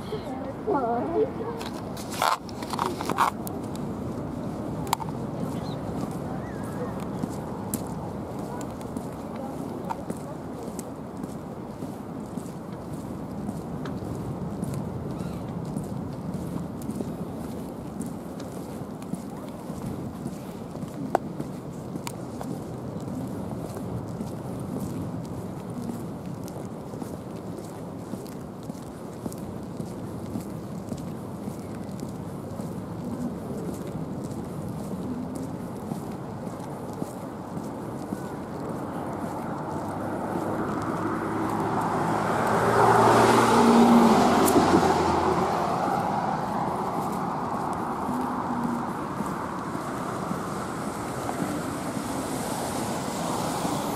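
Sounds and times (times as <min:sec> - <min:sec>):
footsteps on pavement: 0:00.0 - 0:53.9
outdoor background noise: 0:00.0 - 0:53.9.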